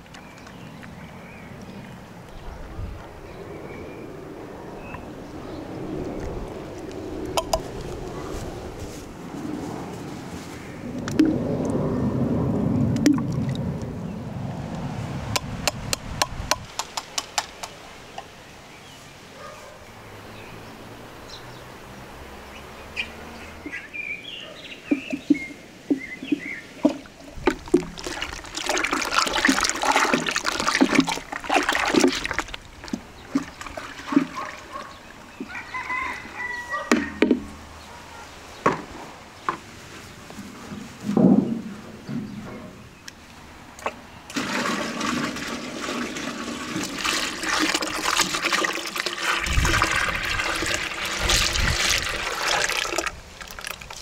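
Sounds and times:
wooden paddle stirring liquid: 24.9s - 35.7s, 43.8s - 54.0s
liquid pouring into metal tray: 27.5s - 32.5s, 44.3s - 53.9s.

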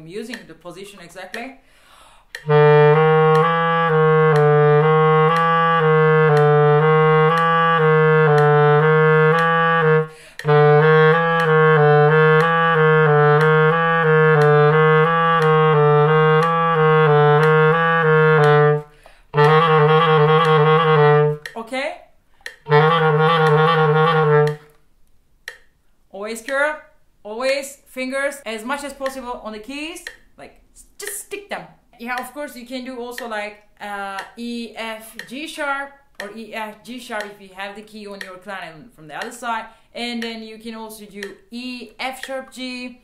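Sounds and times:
metronome ticking: 0.0s - 27.6s, 28.4s - 43.0s
clarinet playing fast runs: 2.4s - 21.5s, 22.7s - 24.7s.

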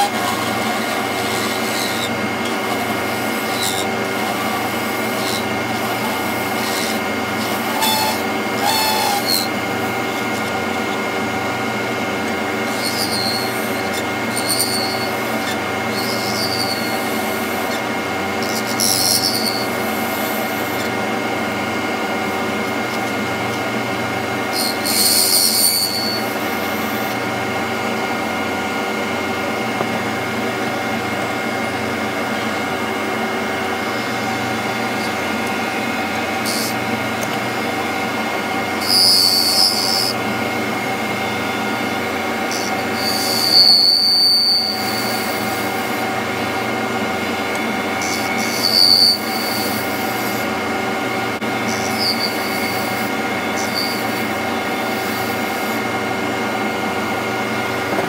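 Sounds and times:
turning tool cutting wood: 0.0s - 27.7s, 29.7s - 56.3s
wood lathe running: 0.0s - 58.0s.

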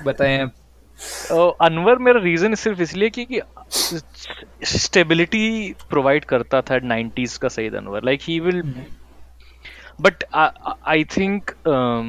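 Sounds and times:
man speaking: 0.0s - 0.5s, 1.2s - 9.0s, 9.9s - 12.0s
steady low hum: 0.0s - 12.0s.

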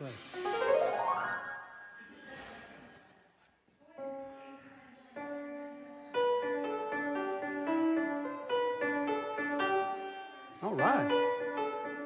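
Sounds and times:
grand piano notes: 0.3s - 2.2s, 5.2s - 12.0s.

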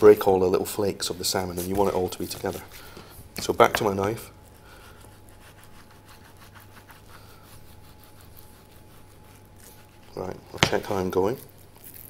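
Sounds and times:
steady low hum: 0.0s - 12.0s
knife scraping fish skin: 3.6s - 12.0s.

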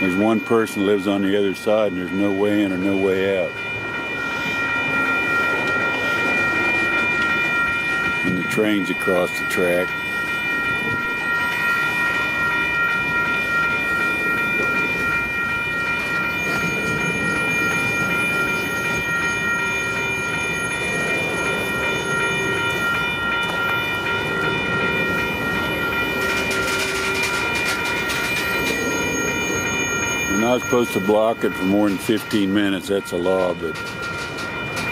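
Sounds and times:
steady high-pitched ringing tone: 0.0s - 34.9s
train wheels rolling on rails: 0.0s - 34.9s.

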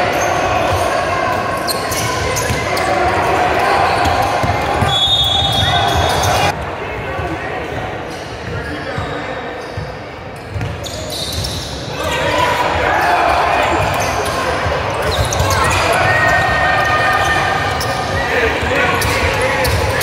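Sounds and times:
voices echoing in hall: 0.0s - 20.0s
basketball bouncing on hardwood court: 10.5s - 10.8s.

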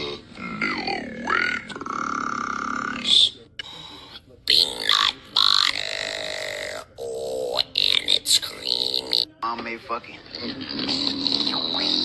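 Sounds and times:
man's rasping burp-like sound: 4.5s - 9.3s.

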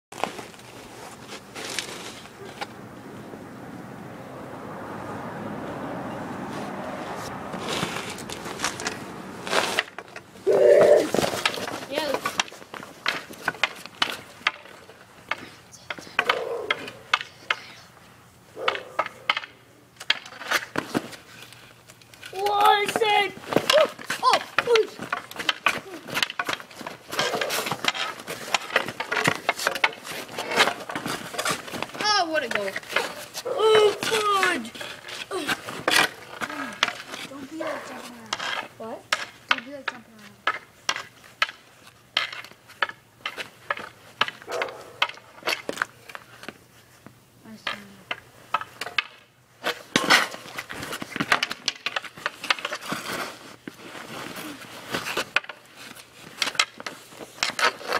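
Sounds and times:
hockey sticks clacking on pavement: 0.2s - 2.8s, 7.2s - 17.9s, 18.6s - 57.9s.

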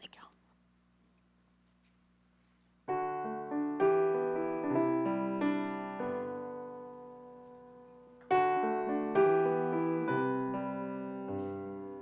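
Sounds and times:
low steady hum: 0.0s - 2.8s.

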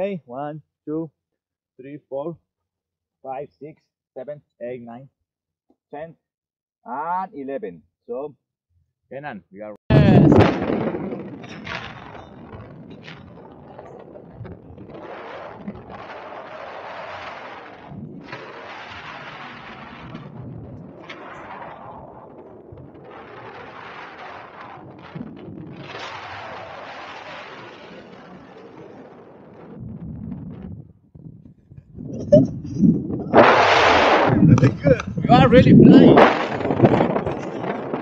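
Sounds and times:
wind buffeting microphone: 9.9s - 26.7s, 28.9s - 38.0s.

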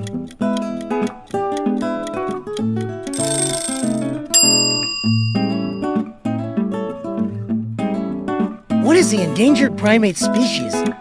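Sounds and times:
bright bell-like chime: 3.2s - 6.0s.

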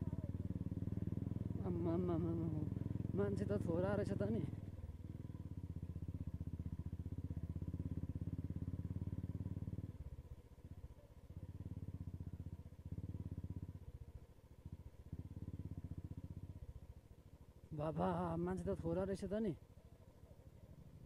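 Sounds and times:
motorcycle engine running: 0.0s - 21.0s.

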